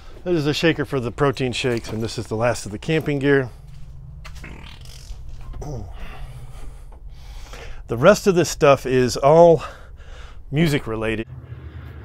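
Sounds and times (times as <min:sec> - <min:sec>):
rustling and shuffling: 0:00.0 - 0:11.2
steady low hum: 0:00.0 - 0:12.0
man grunting with effort: 0:05.6 - 0:06.4.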